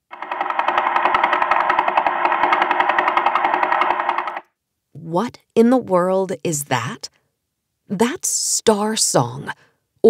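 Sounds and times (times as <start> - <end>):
rapid train of clicks: 0.0 - 4.5.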